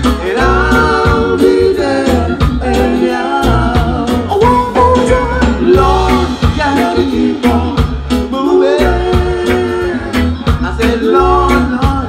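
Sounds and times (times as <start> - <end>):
deep bass line: 0.0 - 12.0
reggae band playing: 0.0 - 12.0
steady drum beat: 0.0 - 12.0
sung vocal harmonies: 0.0 - 12.0.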